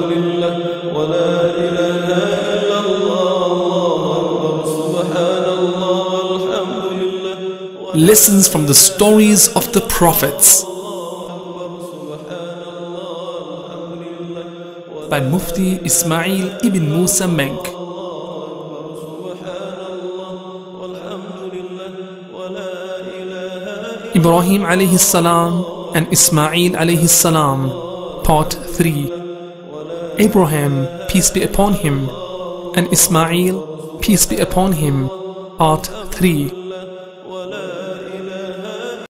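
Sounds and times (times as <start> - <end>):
chanted vocal music: 0.0 - 39.0.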